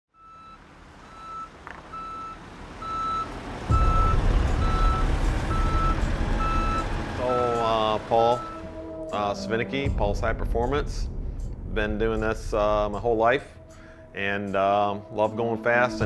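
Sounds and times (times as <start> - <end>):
backup alarm beeping: 0.2 - 9.0
forklift engine running: 0.2 - 9.0.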